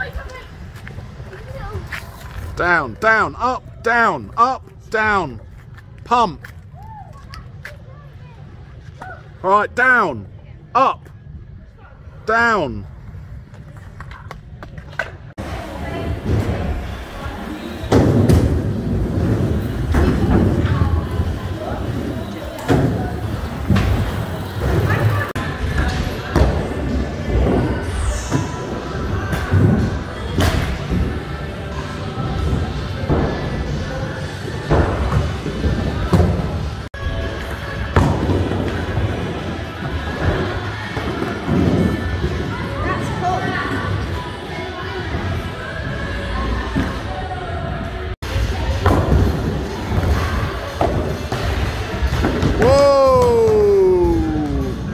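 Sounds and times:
background music: 45.1s - 54.9s.

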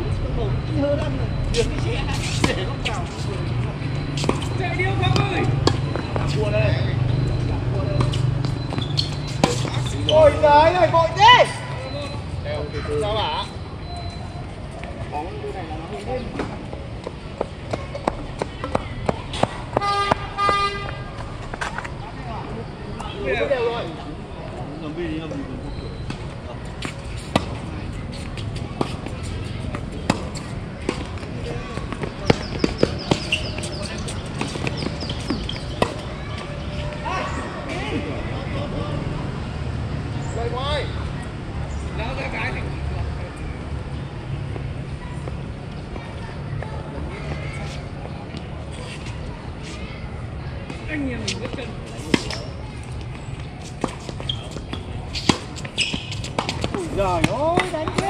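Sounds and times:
tennis balls bouncing on hard court: 7.9s - 10.2s, 16.3s - 21.0s, 26.1s - 37.0s, 50.7s - 58.0s
tennis balls struck by rackets: 8.0s - 10.0s, 26.8s - 36.5s, 51.3s - 58.0s.

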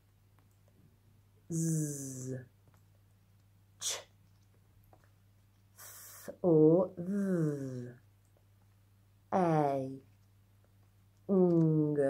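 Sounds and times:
woman saying a speech sound: 1.5s - 2.5s, 5.9s - 8.0s, 9.3s - 10.1s, 11.3s - 12.0s.

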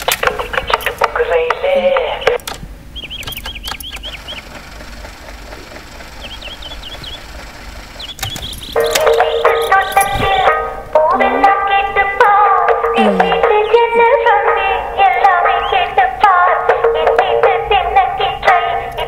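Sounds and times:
voice and music from small speaker: 0.6s - 2.4s, 9.2s - 19.0s
short chirping sounds: 7.9s - 10.4s.

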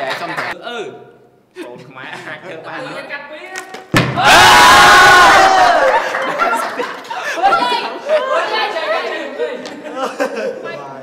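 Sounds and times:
people chattering: 6.3s - 11.0s.

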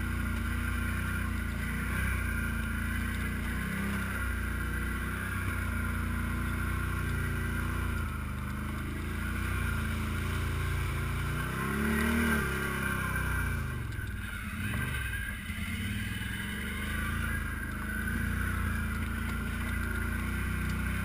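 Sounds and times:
quad bike engine revving: 0.0s - 21.0s.

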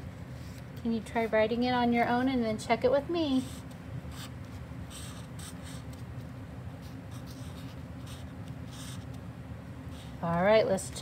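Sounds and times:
marker writing on paper: 4.9s - 6.0s, 6.8s - 9.2s.

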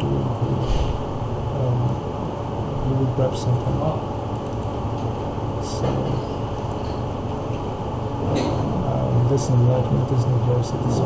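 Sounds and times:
low rumbling hum: 0.0s - 11.0s
brief hiss: 0.6s - 1.2s.

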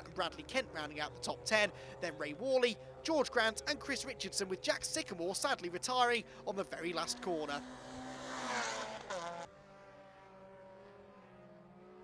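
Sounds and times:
race car engine: 0.0s - 12.0s.

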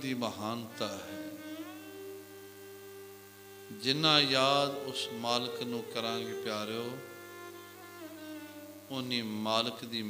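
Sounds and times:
man speaking: 0.0s - 1.4s, 3.7s - 7.1s, 8.9s - 10.0s
musical drone of held tones: 0.0s - 9.7s.

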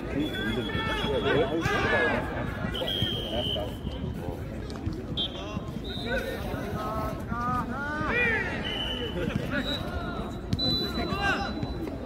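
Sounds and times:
men calling out and talking: 0.0s - 4.2s
crowd chatter: 0.0s - 12.0s.

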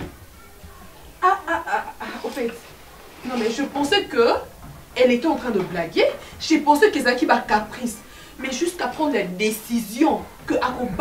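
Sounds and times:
quiet background music: 0.0s - 11.0s
woman speaking: 1.2s - 11.0s.

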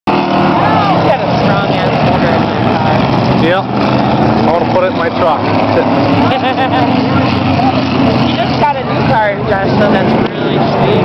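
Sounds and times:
race engines droning: 0.1s - 11.0s
people talking: 0.6s - 3.7s, 4.4s - 11.0s.

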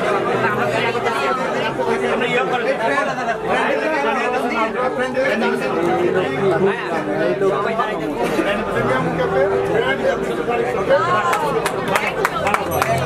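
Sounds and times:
overlapping conversation in echoing room: 0.0s - 13.0s.

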